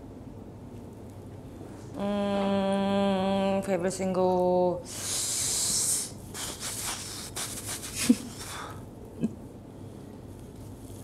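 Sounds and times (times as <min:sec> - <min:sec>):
fabric rubbing on microphone: 0:06.3 - 0:08.4.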